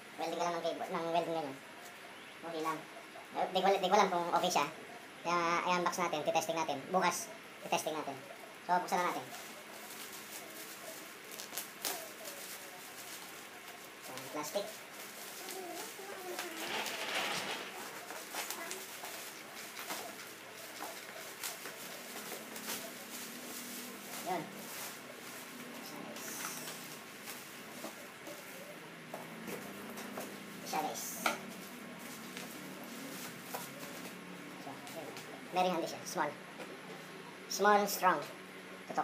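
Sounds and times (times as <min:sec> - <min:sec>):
plastic wrapping crinkling: 0:09.0 - 0:28.7.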